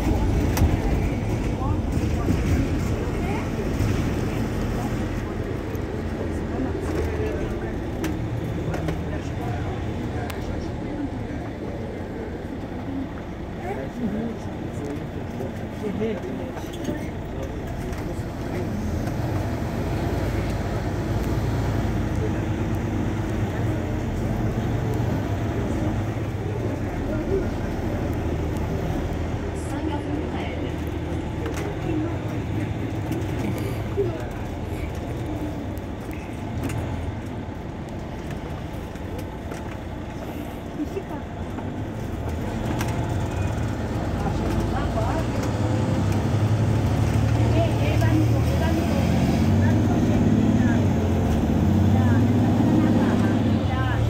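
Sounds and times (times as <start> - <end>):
bus engine idling: 0.0 - 54.0.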